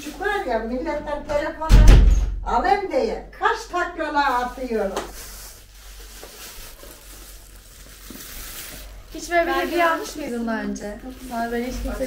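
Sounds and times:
plastic bag rustling: 0:04.0 - 0:12.0.

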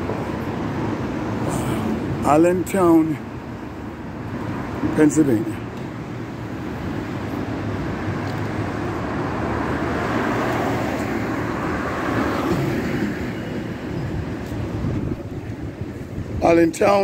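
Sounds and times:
car passing by: 0:07.4 - 0:15.1.

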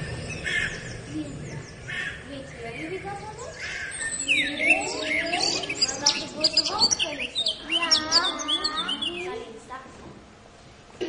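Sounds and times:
bird chirps and whistles: 0:03.5 - 0:09.4.

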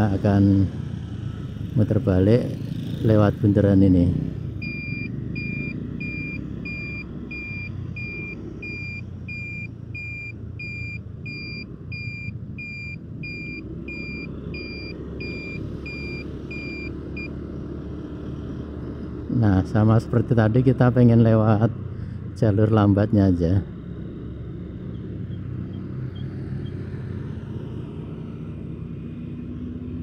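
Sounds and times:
road noise: 0:00.0 - 0:30.0
turn signal buzzer beeping: 0:04.6 - 0:17.3.

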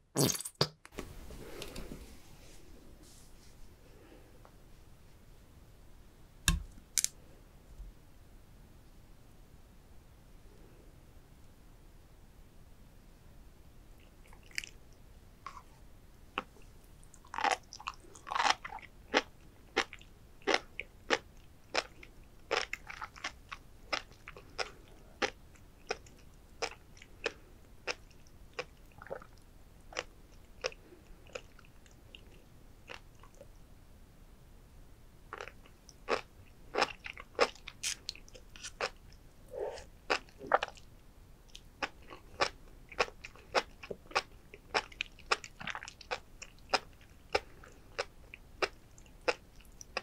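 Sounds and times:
food popping and crunching while chewed: 0:16.4 - 0:32.3, 0:35.3 - 0:39.2, 0:40.1 - 0:40.9, 0:41.5 - 0:50.0.

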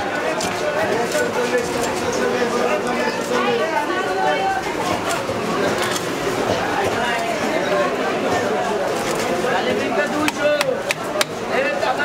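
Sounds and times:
people talking: 0:00.0 - 0:12.0
knocks of fish chopping: 0:10.2 - 0:11.4.

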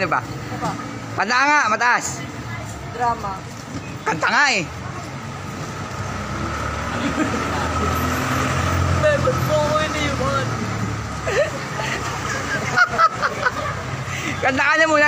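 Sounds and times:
faint street voices: 0:00.0 - 0:15.0
diesel engine driving past: 0:05.3 - 0:12.7.

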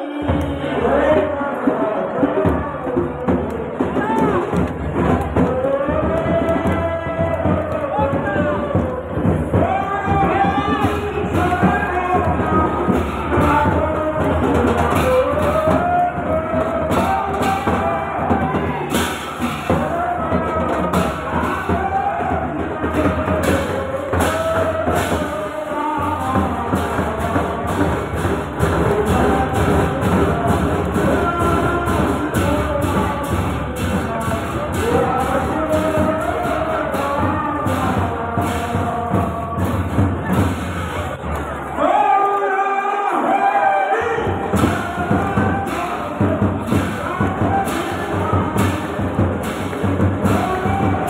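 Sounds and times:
crowd singing devotional chant: 0:00.0 - 0:41.2, 0:41.8 - 0:51.0
steady percussion beat: 0:00.0 - 0:41.3, 0:44.1 - 0:51.0.

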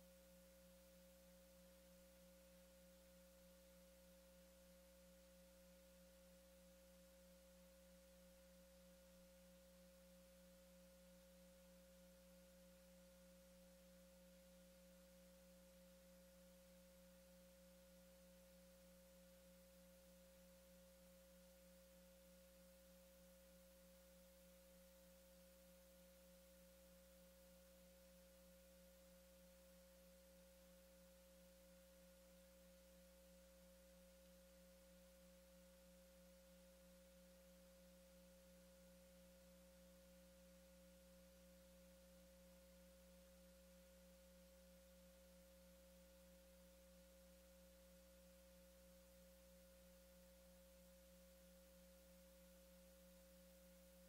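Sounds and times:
faint electrical hum: 0:00.0 - 0:54.0.

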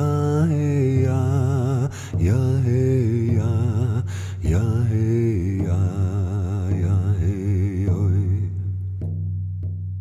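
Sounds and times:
person chanting with vibrato: 0:00.0 - 0:08.6.

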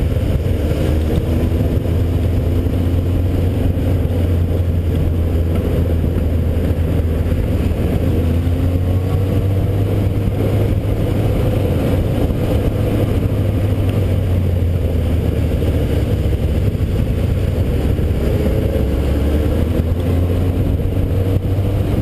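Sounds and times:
motorcycle engine revving: 0:00.0 - 0:22.0.

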